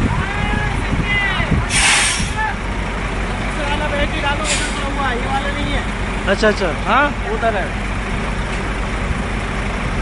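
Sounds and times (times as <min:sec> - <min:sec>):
truck engines rumbling: 0:00.0 - 0:10.0
air brake hiss: 0:01.7 - 0:02.4, 0:04.4 - 0:04.9.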